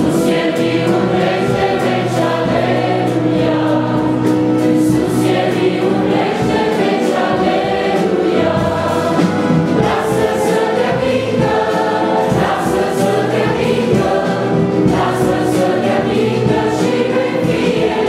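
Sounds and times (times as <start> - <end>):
choir singing a hymn: 0.0 - 18.0
instrumental accompaniment: 0.0 - 18.0.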